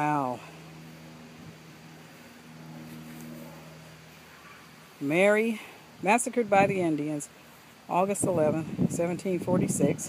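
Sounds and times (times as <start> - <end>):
distant motor hum: 0.0 - 8.0.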